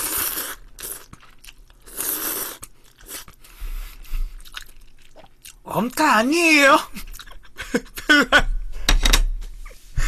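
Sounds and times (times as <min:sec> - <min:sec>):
loud hissing slurp: 0:00.0 - 0:01.0, 0:01.9 - 0:03.2
chewing with mouth clicks: 0:00.3 - 0:03.5, 0:04.3 - 0:05.6.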